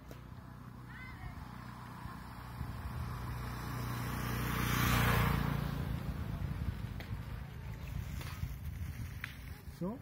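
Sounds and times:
vehicle driving past: 0.3s - 8.8s.

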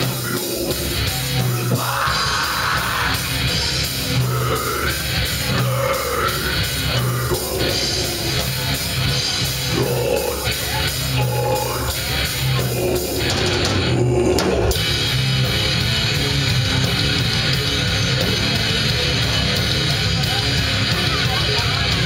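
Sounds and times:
heavy metal band playing: 0.0s - 22.0s.

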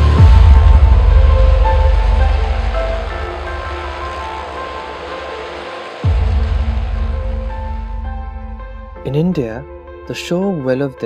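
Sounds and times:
background music with deep bass: 0.0s - 11.0s.

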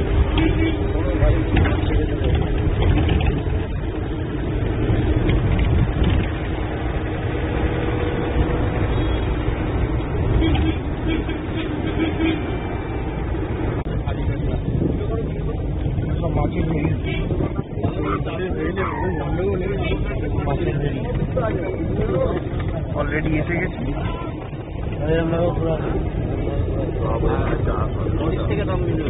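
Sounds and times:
minibus engine and road rumble: 0.0s - 29.0s.

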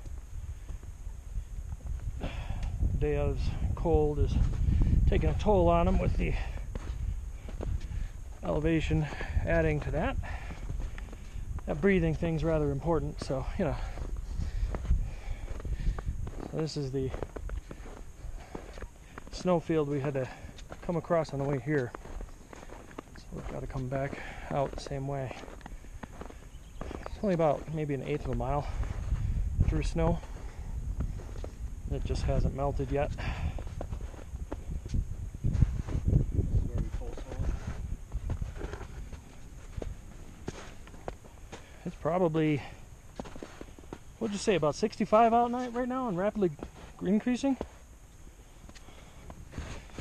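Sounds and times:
footsteps crunching on snow: 3.3s - 47.8s, 48.6s - 50.0s.

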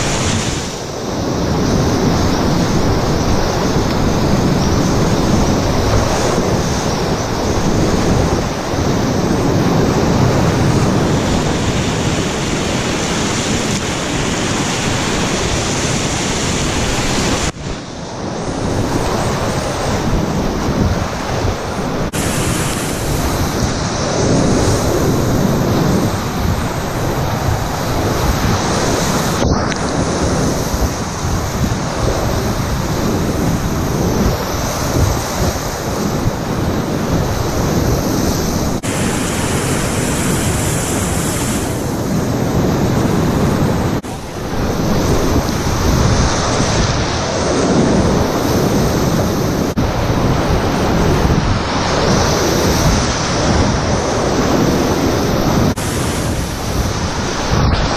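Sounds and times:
whitewater rapids rushing: 0.0s - 42.4s
spray hitting boat: 22.2s - 24.0s.

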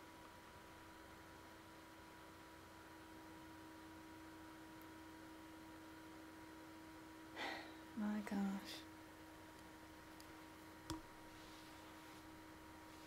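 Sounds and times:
faint two-pitch hum: 0.0s - 13.0s.

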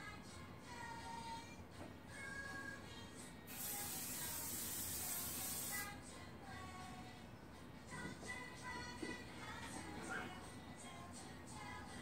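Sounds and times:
background music with singing: 0.0s - 12.0s
aerosol spray can spraying: 3.5s - 5.9s.

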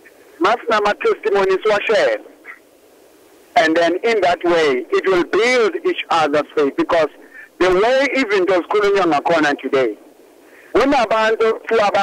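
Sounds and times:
person talking on radio: 3.6s - 10.0s, 10.7s - 12.0s.

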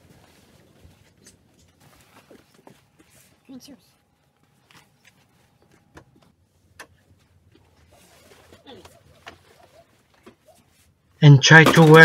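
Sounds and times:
clothes rustling: 0.0s - 11.1s
low cooing sounds: 7.7s - 10.8s.

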